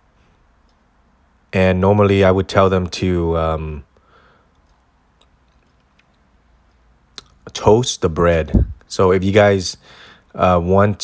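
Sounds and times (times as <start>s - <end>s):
soft light clicks: 0.6s - 0.9s, 4.5s - 7.4s.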